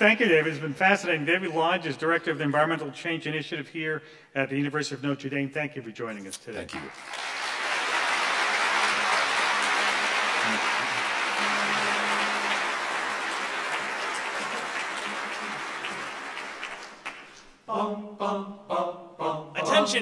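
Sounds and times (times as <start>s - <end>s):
audience applauding: 6.7s - 17.6s.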